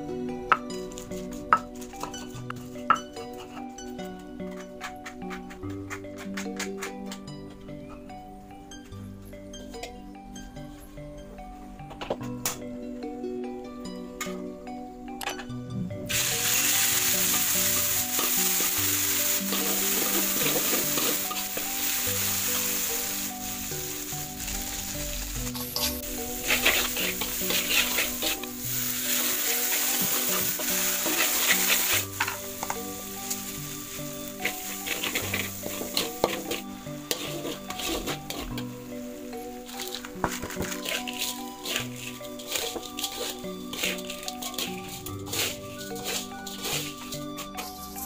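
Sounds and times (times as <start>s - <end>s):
paste sizzling in oil: 16.1s - 48.0s
spatula scraping a wok: 16.1s - 48.0s.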